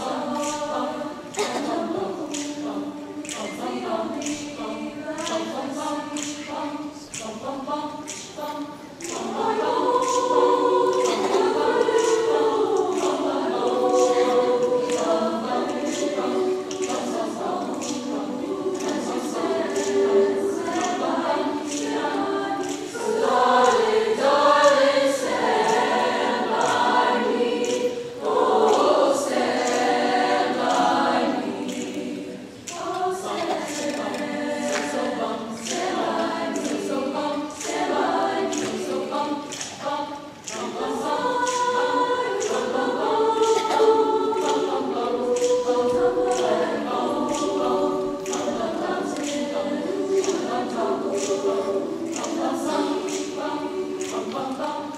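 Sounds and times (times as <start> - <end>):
choir singing in parts: 0.0 - 54.9.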